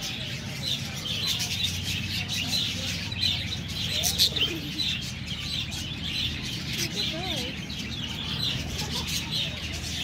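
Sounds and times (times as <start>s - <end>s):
budgerigars chattering: 0.0s - 10.0s.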